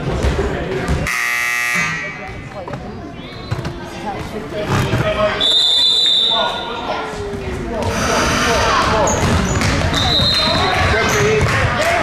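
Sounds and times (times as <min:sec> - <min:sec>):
voices chattering: 0:00.0 - 0:12.0
scoreboard horn buzzing: 0:01.0 - 0:02.4.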